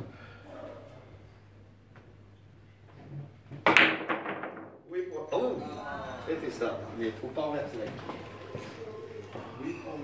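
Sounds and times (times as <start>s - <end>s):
billiard balls clacking: 3.6s - 5.0s.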